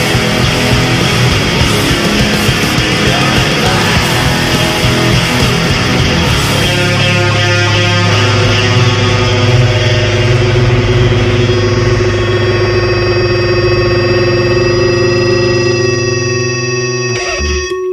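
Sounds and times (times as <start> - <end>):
distorted electric guitar chord: 0.0 - 17.9
steady high-pitched tones: 0.0 - 17.9.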